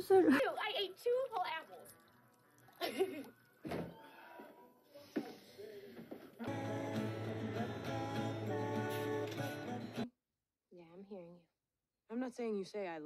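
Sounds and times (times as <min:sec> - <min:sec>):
background music: 0:06.4 - 0:10.1.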